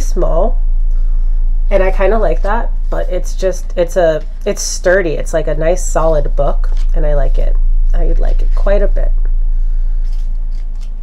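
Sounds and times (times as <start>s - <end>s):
steady low hum: 0.0s - 11.0s
book pages turning: 10.0s - 11.0s.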